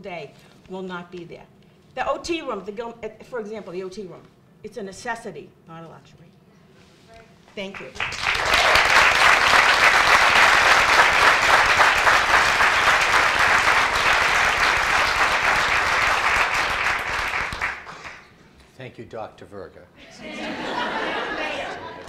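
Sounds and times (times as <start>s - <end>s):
audience clapping: 7.7s - 18.4s.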